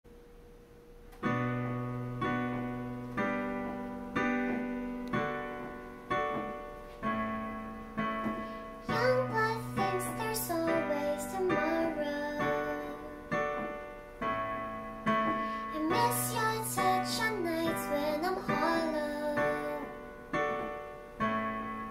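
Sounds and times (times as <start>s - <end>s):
electronic keyboard piano chords: 1.0s - 21.9s
girl singing: 8.8s - 13.8s, 15.6s - 20.2s.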